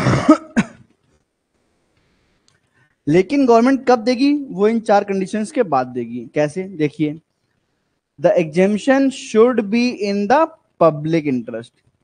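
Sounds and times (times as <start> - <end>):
man clearing his throat: 0.0 - 0.9.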